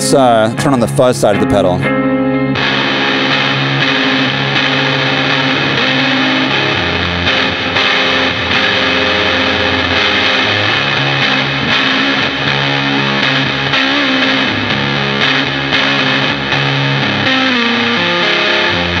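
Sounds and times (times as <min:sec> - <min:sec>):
distorted electric guitar chords: 0:00.0 - 0:19.0.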